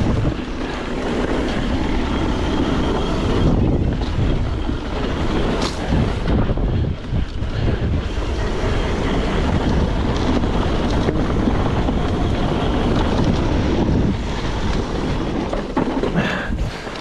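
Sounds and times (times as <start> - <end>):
bike tyres rolling on dirt: 0.0 - 17.0
wind rushing over microphone: 0.0 - 17.0.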